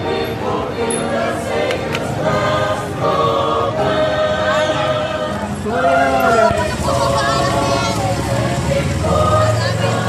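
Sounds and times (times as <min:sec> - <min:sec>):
choir singing long notes: 0:00.0 - 0:10.0.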